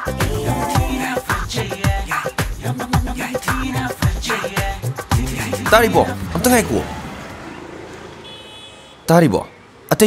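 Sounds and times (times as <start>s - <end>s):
steady traffic hum: 4.8s - 10.0s.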